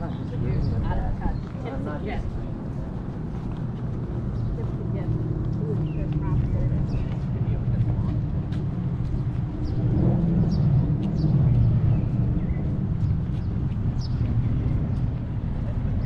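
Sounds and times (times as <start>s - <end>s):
faint voices: 0.0s - 10.0s
traffic engine rumble: 0.0s - 16.0s.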